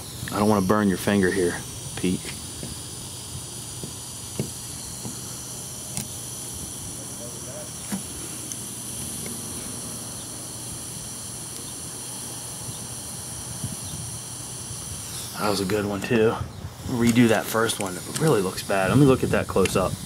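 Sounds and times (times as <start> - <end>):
steady high-pitched hiss: 0.0 - 20.0
faint soldering ticks: 17.0 - 18.5, 19.6 - 19.9.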